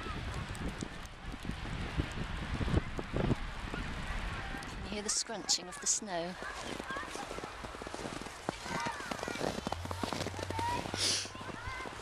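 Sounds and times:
footsteps crunching in snow: 0:05.2 - 0:12.0.

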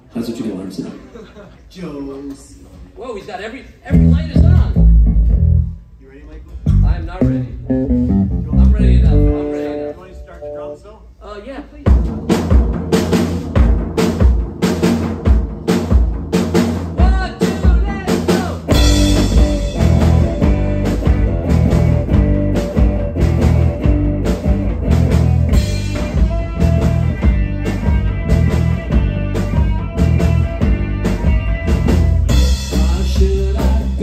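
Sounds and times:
drum kit: 0:03.9 - 0:05.8, 0:06.5 - 0:10.6, 0:11.8 - 0:34.0
electric bass: 0:03.9 - 0:05.9, 0:06.6 - 0:10.6, 0:18.7 - 0:34.0
electric guitar: 0:06.7 - 0:10.6, 0:18.7 - 0:34.0.

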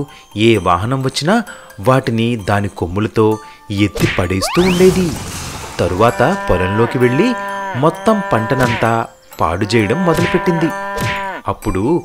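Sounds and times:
bull mooing: 0:05.9 - 0:11.5.

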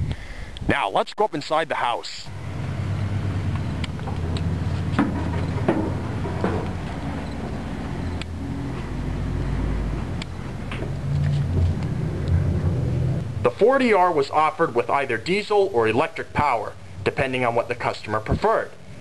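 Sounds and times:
low mechanical drone: 0:02.3 - 0:19.0
footsteps on steel deck: 0:02.6 - 0:09.1.

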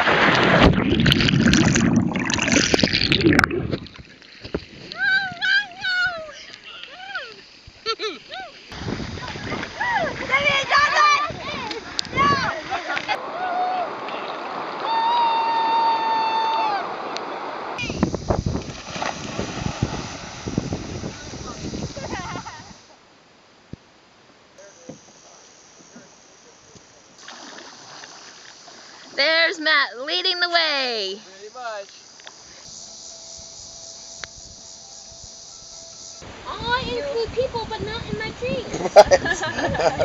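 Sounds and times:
insect chorus: 0:00.0 - 0:13.2, 0:17.0 - 0:40.0
river water rushing and splashing: 0:08.5 - 0:14.9, 0:27.2 - 0:29.5.

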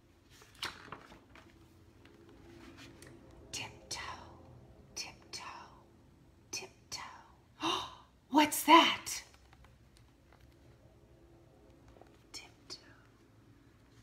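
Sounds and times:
woman whispering: 0:03.5 - 0:05.8, 0:06.5 - 0:09.2, 0:12.2 - 0:13.2
woman speaking: 0:06.6 - 0:09.4.

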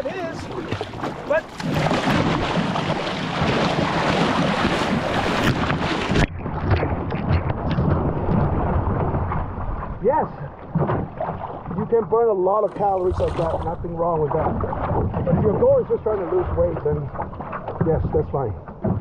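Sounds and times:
wind on microphone: 0:00.0 - 0:11.8
paddle splashing into water: 0:00.0 - 0:19.0.

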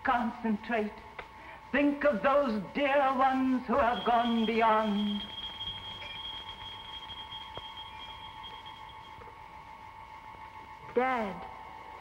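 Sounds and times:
eerie sustained high tones: 0:03.7 - 0:09.9.

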